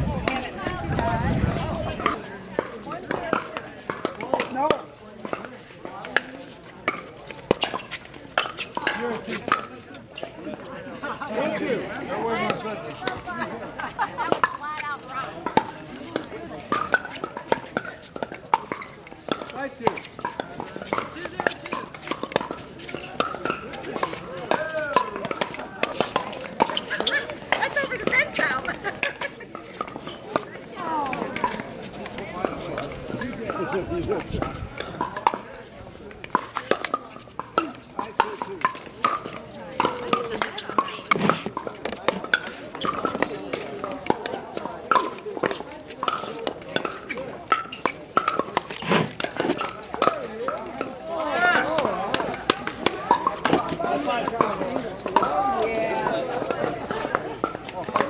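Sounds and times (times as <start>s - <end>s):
people talking: 0.0s - 58.0s
paddles hitting plastic ball: 15.4s - 50.9s.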